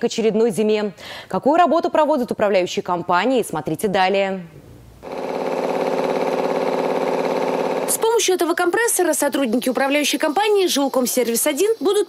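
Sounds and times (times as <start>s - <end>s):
piston air compressor running: 5.0s - 8.4s.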